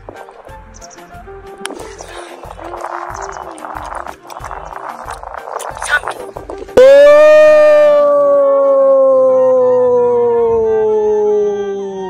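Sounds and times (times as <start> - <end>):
long howling cry: 6.8 - 11.8.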